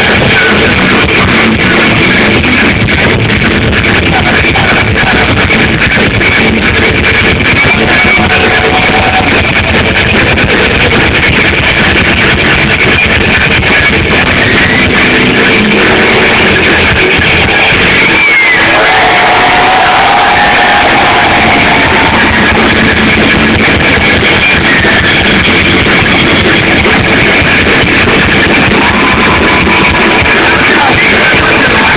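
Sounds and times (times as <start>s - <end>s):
rock band playing live: 0.0s - 31.9s.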